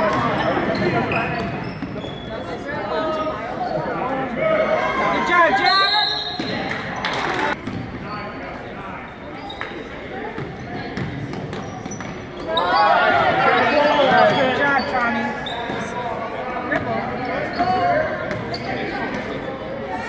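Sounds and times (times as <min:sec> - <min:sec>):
voices echoing in hall: 0:00.0 - 0:20.0.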